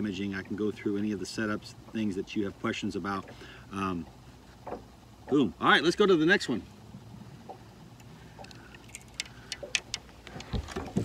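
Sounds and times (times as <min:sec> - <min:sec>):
gear handling clicks and taps: 0:07.5 - 0:11.0.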